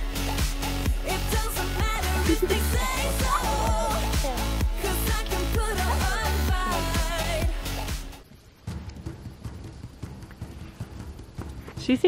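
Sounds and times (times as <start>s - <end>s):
hooves on grass: 9.6s - 12.0s.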